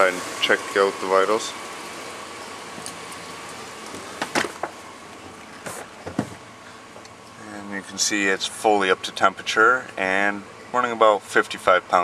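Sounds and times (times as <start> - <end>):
truck engine idling: 0.0 - 12.0
car door knocks and clicks: 3.9 - 6.4.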